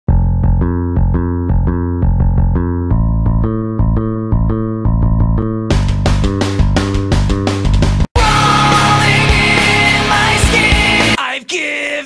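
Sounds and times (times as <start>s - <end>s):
keyboard figure over bass: 0.1s - 11.2s
drums with cymbal crashes: 6.5s - 11.2s.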